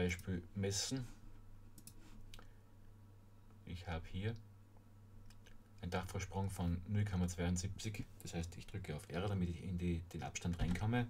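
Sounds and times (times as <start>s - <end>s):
low steady hum: 0.0s - 11.0s
computer mouse clicks: 1.8s - 2.5s.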